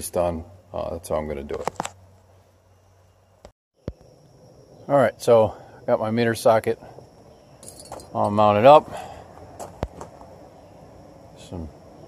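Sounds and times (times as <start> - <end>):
faint steady background noise: 0.0 - 12.0.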